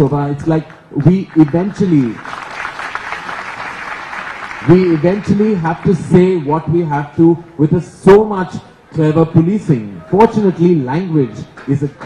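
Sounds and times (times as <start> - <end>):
audience applauding: 0.7 - 6.4.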